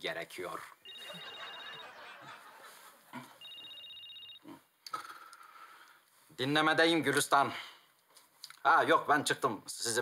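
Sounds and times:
mobile phone ringing: 0.8 - 2.6, 3.4 - 4.5.

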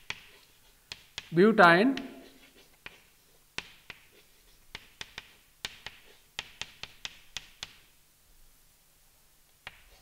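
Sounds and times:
chalk scraping: 0.0 - 1.3, 2.0 - 7.8, 9.6 - 10.0
chalk tapping on chalkboard: 0.0 - 7.9, 9.6 - 10.0.

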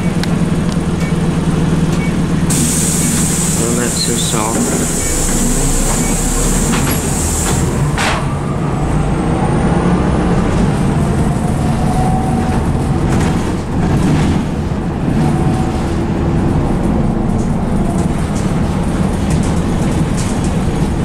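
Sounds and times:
bus engine running: 0.0 - 21.0
high hiss: 2.5 - 7.8.

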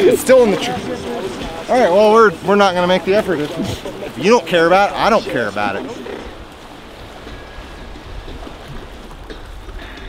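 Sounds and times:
river rushing: 0.0 - 10.0.

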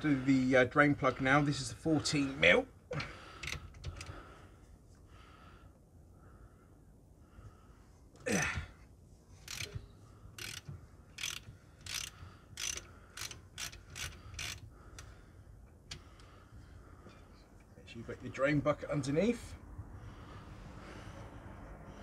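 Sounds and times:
hand ratchet clicking: 3.4 - 4.2, 9.4 - 9.8, 10.4 - 15.1.

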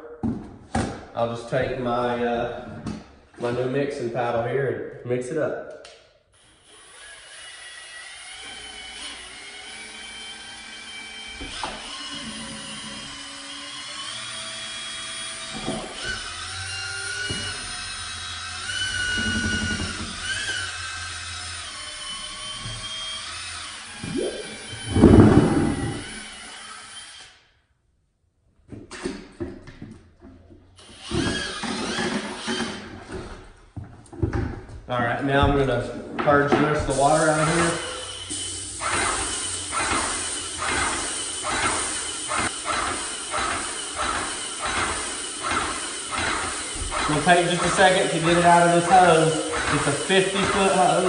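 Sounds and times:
knocks and handling sounds: 0.2 - 1.1
cordless drill motor whine: 6.4 - 27.4
loud thump: 24.8 - 26.2.

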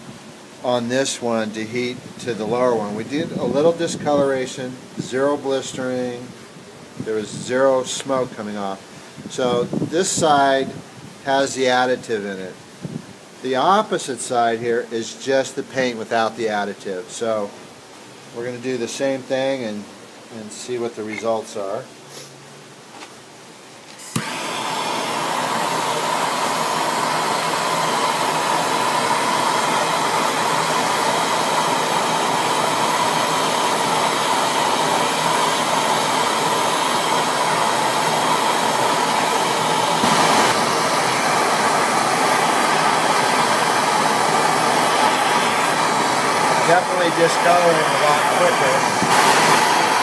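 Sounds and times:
propane torch flame burning: 0.0 - 6.2, 23.8 - 50.0.

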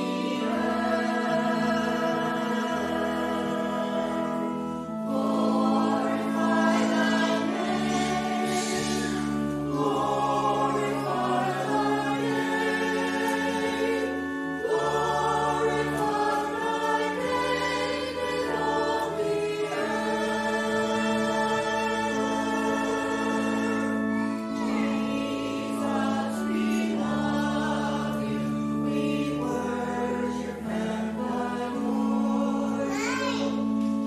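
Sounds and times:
choir singing held chords: 0.0 - 34.0
sustained keyboard accompaniment: 0.0 - 34.0.

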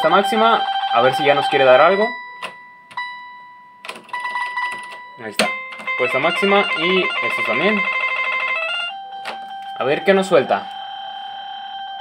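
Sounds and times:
slot machine ringing beeps: 0.0 - 3.3, 4.1 - 12.0.

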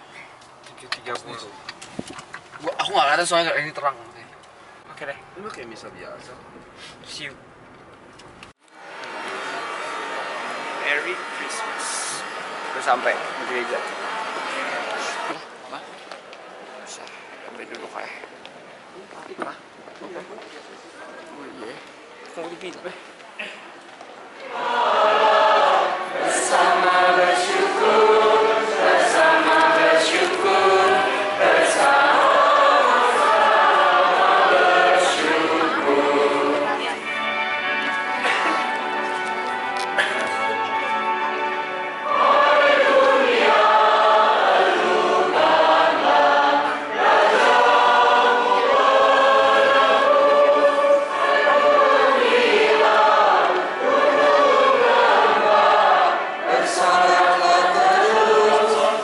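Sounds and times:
room noise hiss in large hall: 8.6 - 59.0
congregation singing a hymn: 9.0 - 15.6, 24.3 - 59.0.

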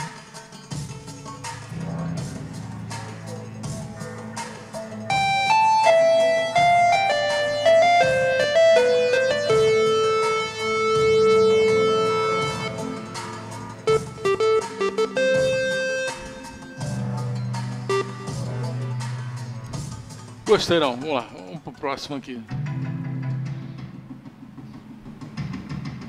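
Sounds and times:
synthesizer lead notes: 0.7 - 20.9
low sustained bass notes: 1.6 - 20.4.

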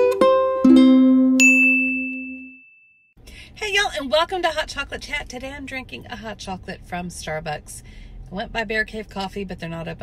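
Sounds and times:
bright bell-like ding: 1.4 - 3.0
low jingle note ringing: 1.4 - 3.1.

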